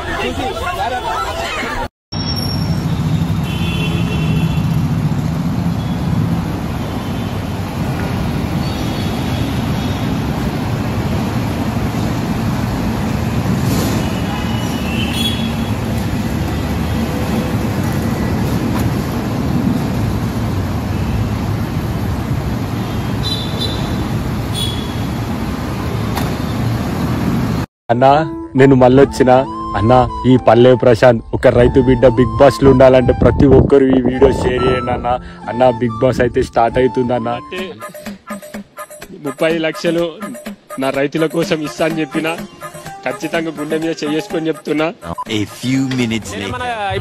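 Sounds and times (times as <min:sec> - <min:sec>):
road traffic: 0:00.0 - 0:27.7, 0:31.6 - 0:47.0.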